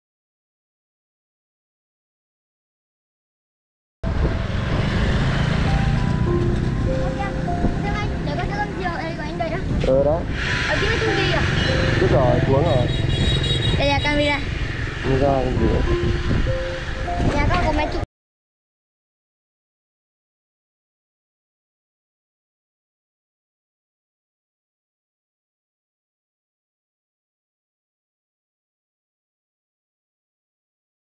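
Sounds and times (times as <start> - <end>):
wind rumbling on microphone: 4.0 - 18.0
motorbike riding past: 4.1 - 18.0
people's voices: 6.9 - 13.1, 13.8 - 16.0.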